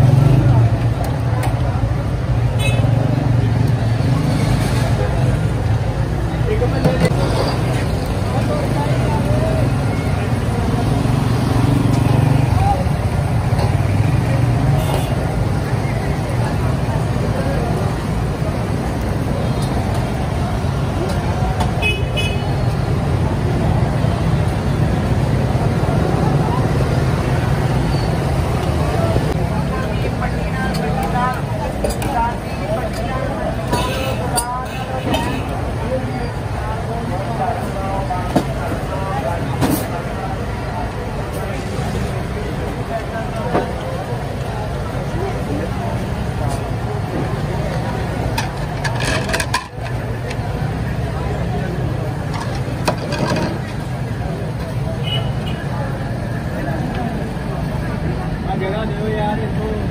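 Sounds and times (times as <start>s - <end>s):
motorcycle and car traffic: 0.0s - 59.9s
people chattering: 0.0s - 59.9s
vehicle horn toot: 21.8s - 22.5s.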